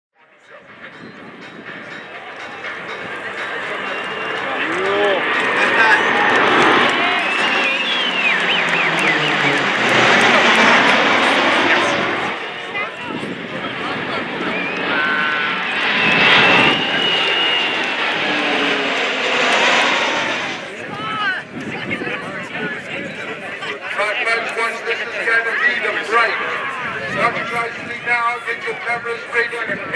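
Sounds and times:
aircraft flying past: 0.6s - 29.9s.

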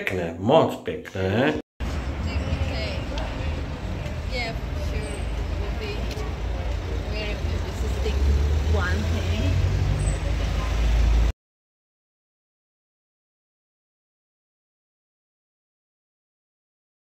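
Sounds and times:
rumble of passing vehicles: 1.8s - 11.3s.

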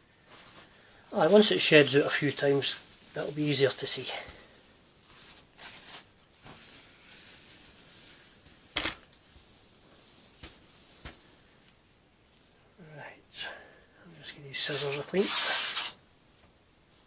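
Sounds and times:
paper towel rubbing on steel: 14.5s - 16.0s.

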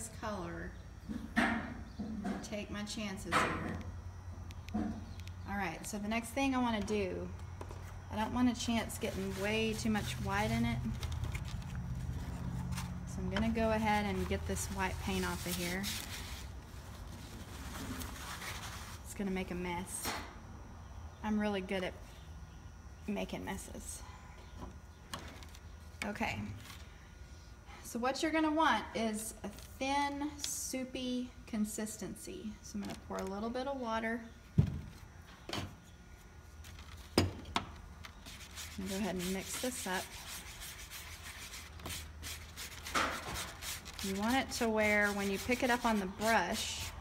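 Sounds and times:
paper towel crinkling on paper plate: 38.2s - 46.4s.

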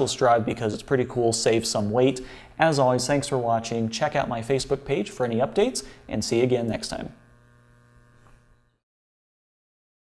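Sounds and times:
steady electrical hum: 0.0s - 8.8s.

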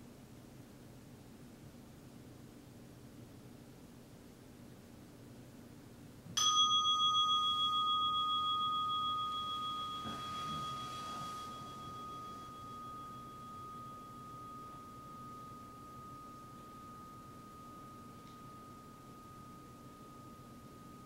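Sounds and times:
meditation bell ringing: 6.4s - 21.0s
cloth rustling: 9.8s - 13.2s.

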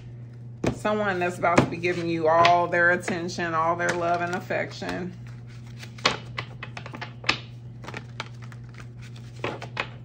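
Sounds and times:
cards being shuffled: 5.0s - 10.0s.

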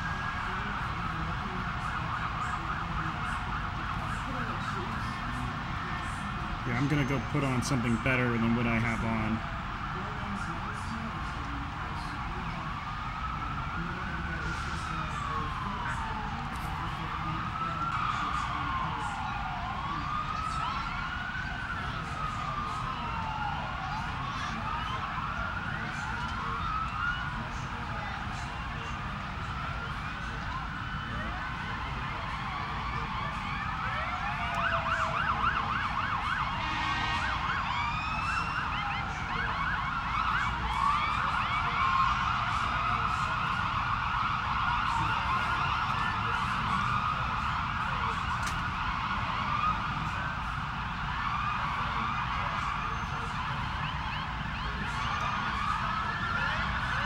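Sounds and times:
fast yelping siren: 0.0s - 57.0s
wailing sirens: 0.0s - 57.0s.

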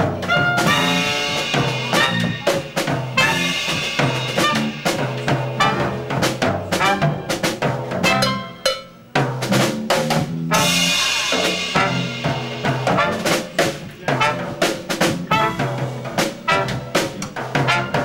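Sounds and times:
jazz band playing: 0.0s - 18.0s.

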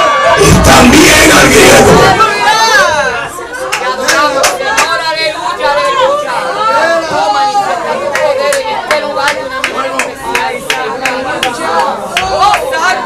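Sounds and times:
congregation voices: 0.0s - 13.0s
man speaking into a microphone: 0.4s - 2.2s.

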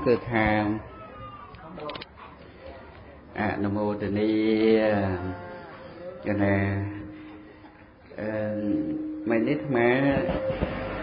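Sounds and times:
monk chanting through a microphone: 3.4s - 7.2s, 8.2s - 11.0s.

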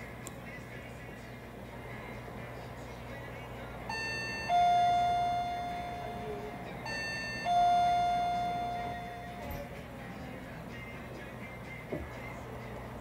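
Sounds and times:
two-note ding-dong chime: 3.9s - 9.8s.

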